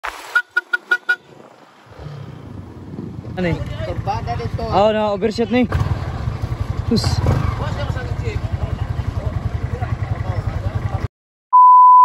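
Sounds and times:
vehicle horn short beeps: 0:00.3 - 0:01.3.

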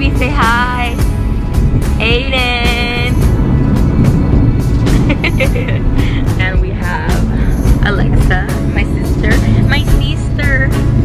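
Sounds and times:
car cabin rumble: 0:00.0 - 0:11.0
music playing: 0:00.0 - 0:11.0.

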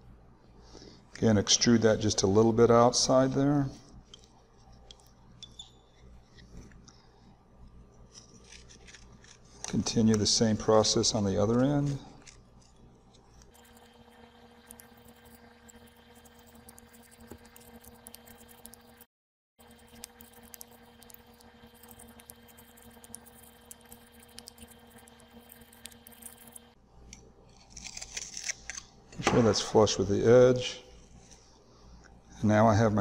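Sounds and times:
faint hum: 0:00.0 - 0:33.0
knife scraping soil: 0:08.1 - 0:10.6, 0:11.2 - 0:12.8.

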